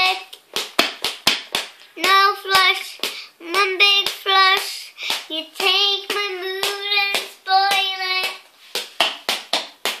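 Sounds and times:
child singing: 0.0 - 0.4, 2.0 - 8.4
hands clapping: 0.3 - 10.0.

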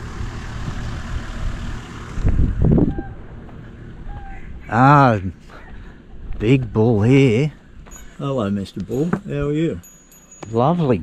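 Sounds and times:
engine low rumble: 0.0 - 11.0
tyres on dirt track: 0.0 - 11.0.

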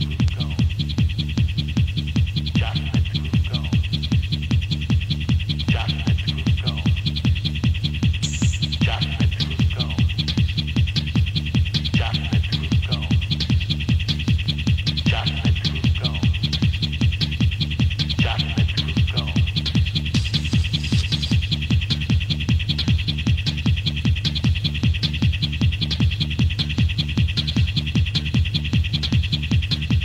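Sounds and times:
bright hi-hat pattern: 0.0 - 29.9
techno music: 0.0 - 30.0.

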